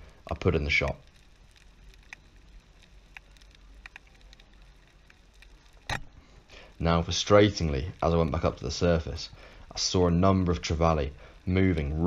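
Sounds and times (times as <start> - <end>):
sharp underwater clicks: 0.3 - 6.2.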